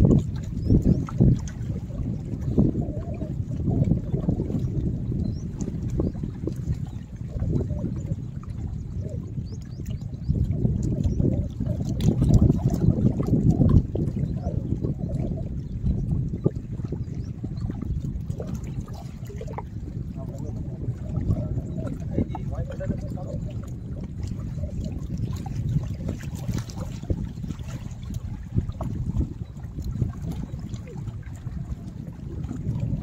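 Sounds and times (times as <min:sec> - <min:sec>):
water lapping against rocks: 0:00.0 - 0:33.0
wind rumbling on microphone: 0:00.0 - 0:33.0.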